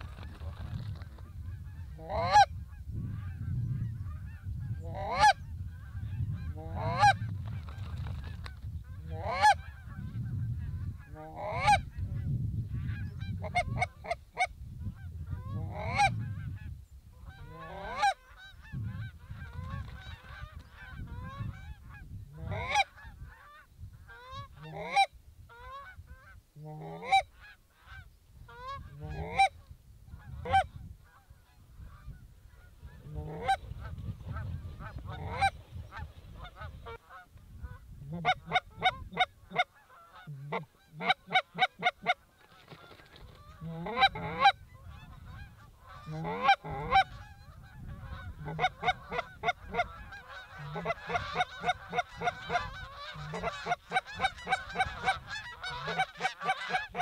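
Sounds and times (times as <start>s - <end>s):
geese honking: 0.0s - 7.2s, 8.8s - 11.9s, 15.3s - 29.6s, 30.2s - 57.0s.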